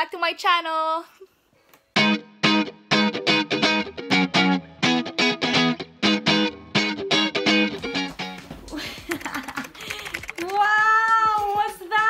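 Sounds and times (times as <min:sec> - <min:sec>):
sharp clicks: 0:09.6 - 0:10.6.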